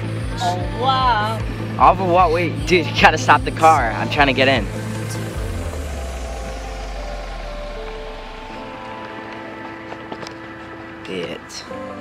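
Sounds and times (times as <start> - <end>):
background music: 0.0 - 12.0
van engine rumble: 0.0 - 12.0.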